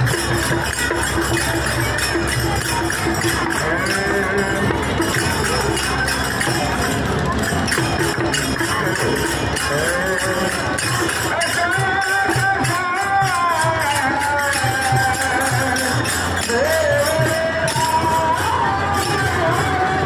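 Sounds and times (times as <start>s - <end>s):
crowd chatter: 0.0s - 20.0s
jingling percussion beat: 0.0s - 20.0s
voices singing: 8.4s - 20.0s.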